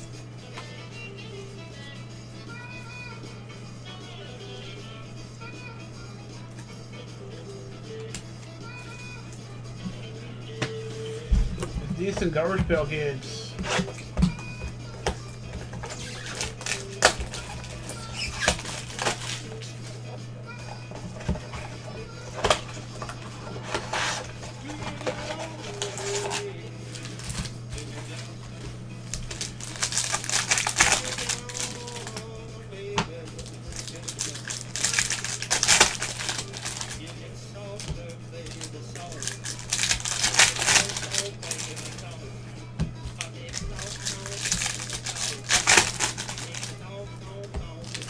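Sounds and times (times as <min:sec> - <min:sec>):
plastic wrapper crinkling: 0:15.8 - 0:19.5, 0:23.4 - 0:28.2, 0:29.0 - 0:32.3, 0:33.2 - 0:37.1, 0:38.5 - 0:42.2, 0:43.2 - 0:46.8, 0:47.8 - 0:48.0.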